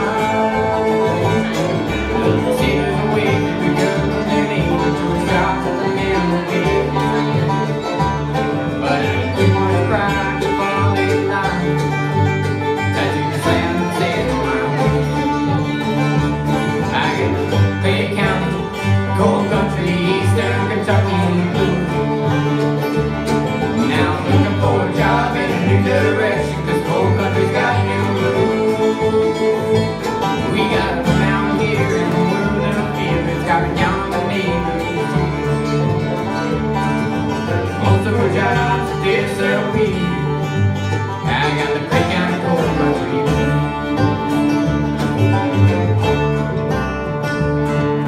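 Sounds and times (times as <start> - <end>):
bluegrass band playing: 0.0 - 48.0.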